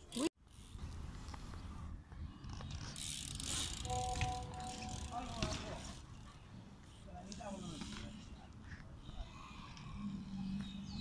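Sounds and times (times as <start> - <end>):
bike tyres rolling on concrete: 0.0 - 11.0
bike freewheel ticking: 2.6 - 5.8.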